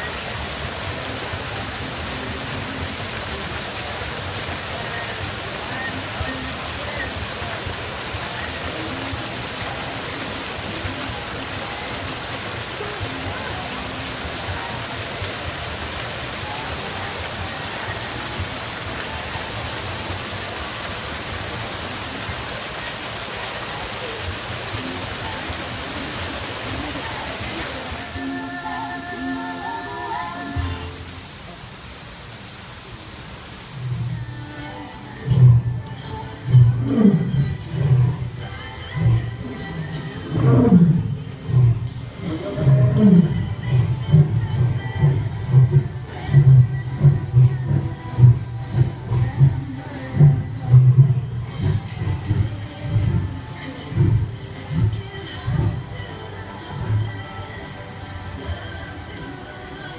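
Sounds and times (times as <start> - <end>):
waterfall rushing into pool: 0.0 - 59.9.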